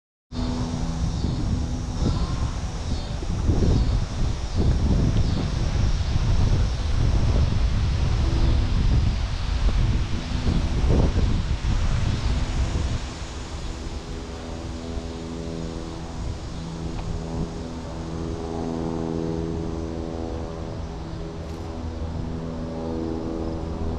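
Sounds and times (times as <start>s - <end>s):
engine drone: 0.3s - 23.9s
wind rumbling on microphone: 0.3s - 23.9s.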